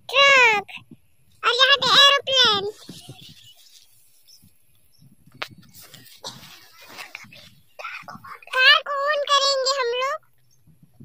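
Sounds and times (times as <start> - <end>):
faint rustling: 0.8 - 8.7
high-pitched wordless calls: 1.4 - 4.4, 5.7 - 10.2.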